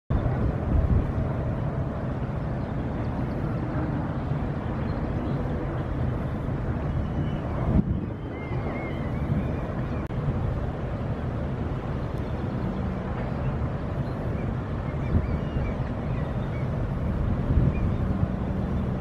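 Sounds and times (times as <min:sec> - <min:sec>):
ship engines rumbling: 0:00.1 - 0:19.0
wind buffeting microphone: 0:00.1 - 0:19.0.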